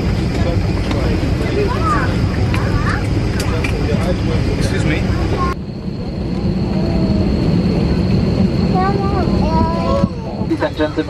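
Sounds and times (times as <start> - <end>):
aircraft systems rumble: 0.0 - 11.0
passenger chatter: 0.0 - 11.0.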